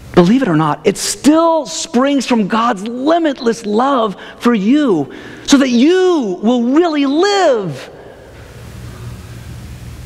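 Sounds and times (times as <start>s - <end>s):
low steady hum: 0.0s - 10.0s
faint hiss: 7.8s - 10.0s.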